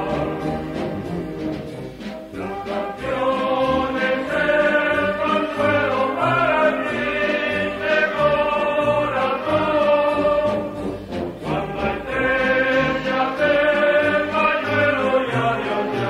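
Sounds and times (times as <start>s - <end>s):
band accompaniment: 0.0s - 16.0s
choir singing held notes: 0.0s - 16.0s.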